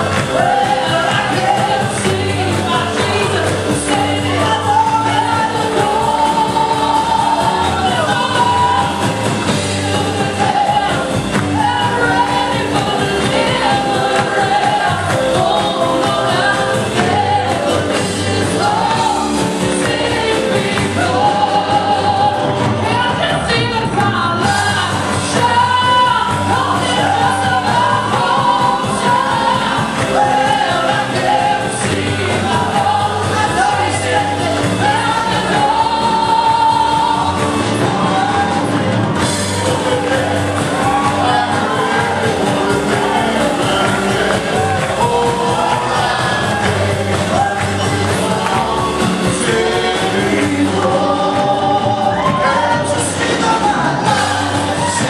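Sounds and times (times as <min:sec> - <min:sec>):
woman singing into a microphone: 0:00.0 - 0:38.9, 0:45.5 - 0:55.0
live band keyboard and drums: 0:00.0 - 0:55.0.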